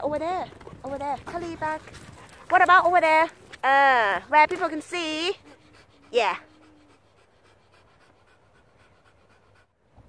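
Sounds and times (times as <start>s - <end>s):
dog panting: 0.5s - 10.0s.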